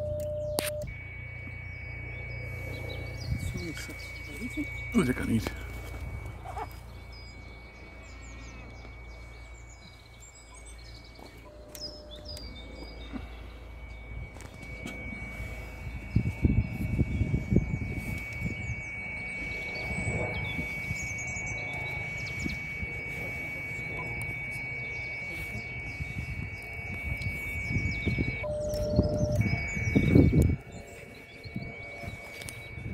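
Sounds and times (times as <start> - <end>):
birds chirping: 0.0 - 32.9
low steady beep: 0.0 - 32.9
radio high whistle: 0.0 - 32.9
steady low rumble: 0.0 - 32.9
thin high tone: 0.0 - 32.9.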